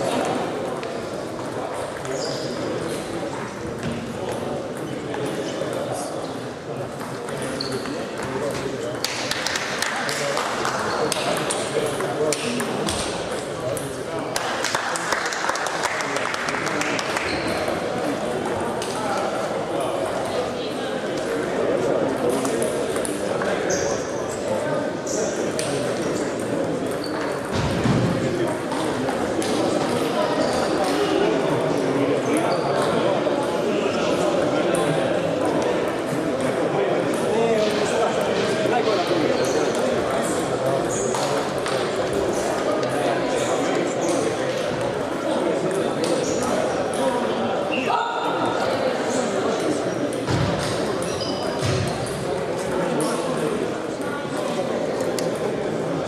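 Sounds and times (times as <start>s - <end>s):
murmur of voices: 0.0s - 56.0s.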